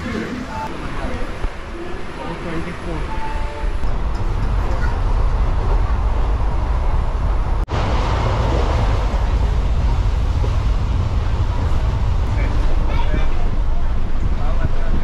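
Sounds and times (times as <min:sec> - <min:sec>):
train carriage rumbling and rattling: 0:00.0 - 0:15.0.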